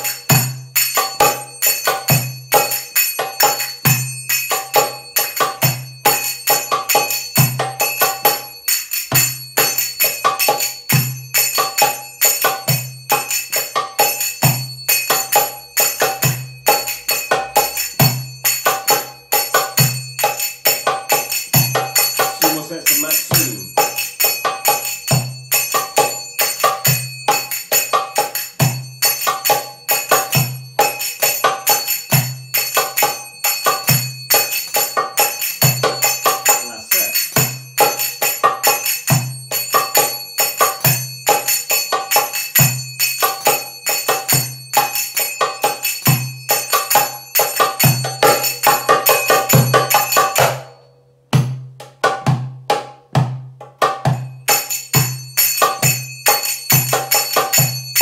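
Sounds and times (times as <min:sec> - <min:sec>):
finger cymbals ringing: 0:00.0 - 0:51.0, 0:54.1 - 0:58.0
hand drum rhythm: 0:00.0 - 0:58.0.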